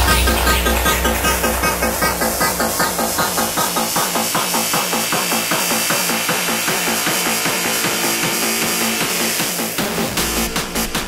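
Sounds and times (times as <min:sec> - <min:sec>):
heavy bass: 0:00.0 - 0:11.0.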